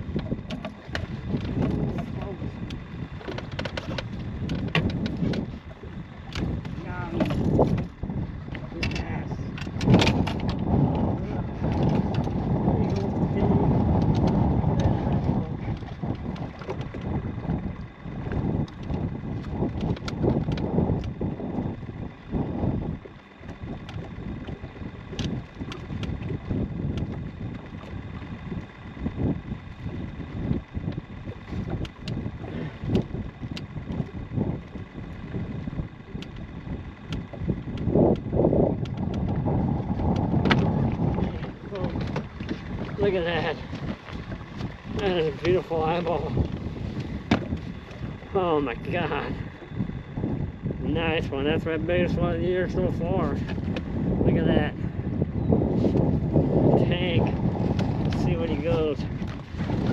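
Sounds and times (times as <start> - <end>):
faint steady whine: 0.0 - 59.9
water lapping: 0.0 - 59.9
wind buffeting microphone: 0.0 - 59.9.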